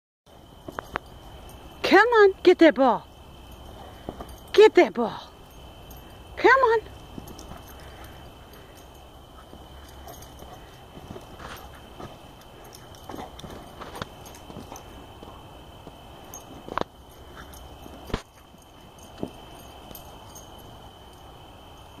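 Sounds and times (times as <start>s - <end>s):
faint steady high tone: 0.3s - 22.0s.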